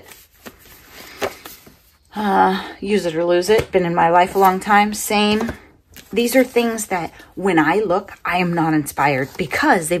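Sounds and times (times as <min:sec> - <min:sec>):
paper rustling: 0:00.0 - 0:01.9.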